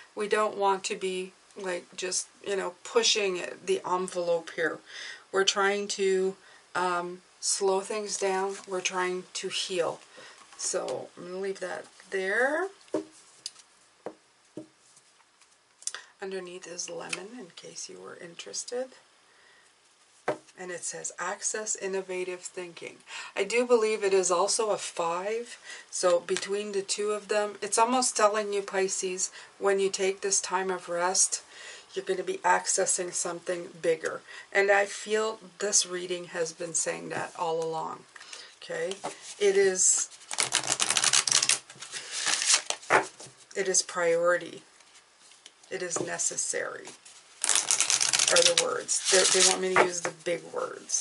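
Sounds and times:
cards being riffled: 40.2 - 43.1, 47.4 - 49.9.

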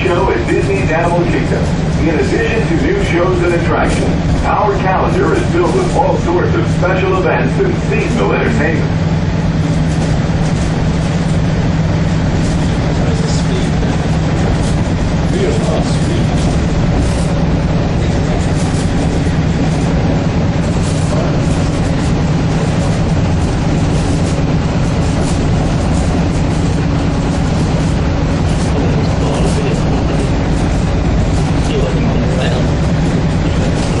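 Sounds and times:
monorail motor drone: 0.0 - 34.0.

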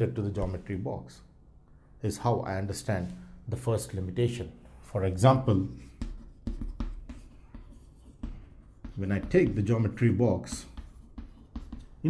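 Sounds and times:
chalk writing on chalkboard: 4.6 - 12.0.

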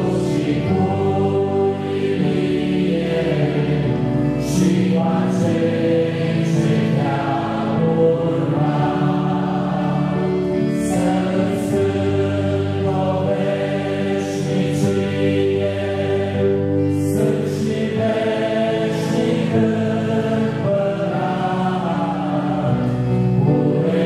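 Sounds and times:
congregation singing a hymn: 0.0 - 24.0.

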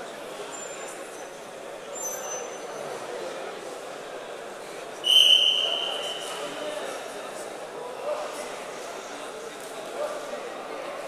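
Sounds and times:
murmur of many people talking: 0.0 - 11.0
faint high-pitched squeaks: 0.4 - 3.0.

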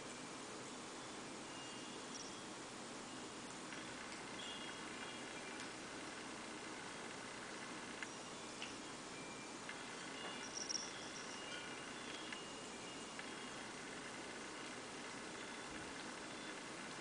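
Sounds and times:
quiet hiss: 0.0 - 17.0.

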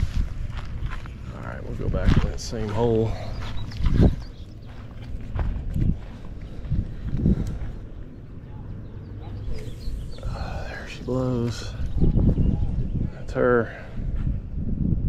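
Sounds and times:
wind rumble on microphone: 0.0 - 15.0
person speaking: 10.1 - 12.0.

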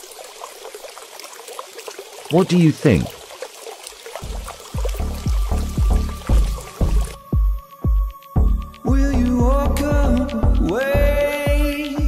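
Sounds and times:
trickling water-like noise: 0.0 - 8.8.

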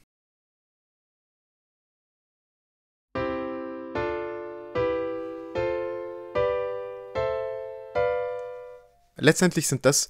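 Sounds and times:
piano block chords: 3.2 - 9.1.

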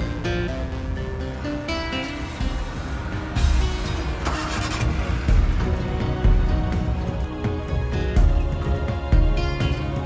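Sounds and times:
vehicle engine running: 0.0 - 7.8
background music: 0.0 - 10.0.

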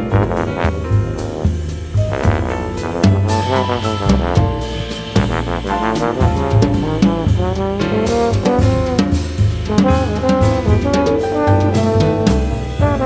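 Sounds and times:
trombones sliding melody: 0.0 - 9.0, 9.7 - 13.0
bass: 0.0 - 13.0
drum kit: 0.0 - 13.0.

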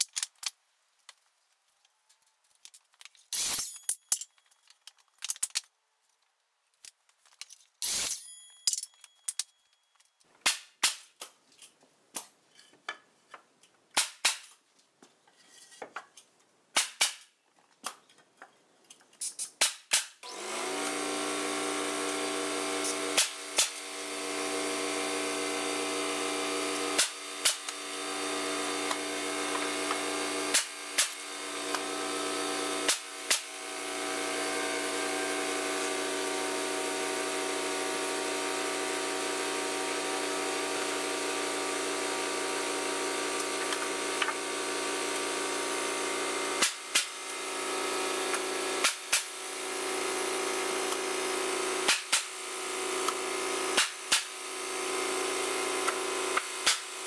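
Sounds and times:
pneumatic nailer firing: 3.3 - 3.9, 7.8 - 8.2, 10.4 - 11.2, 13.9 - 14.6, 16.7 - 17.4, 19.3 - 57.0
air compressor running: 20.2 - 57.0.

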